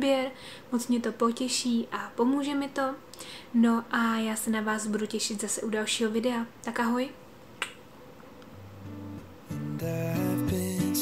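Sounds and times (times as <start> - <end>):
soft music with low held notes: 8.6 - 11.0.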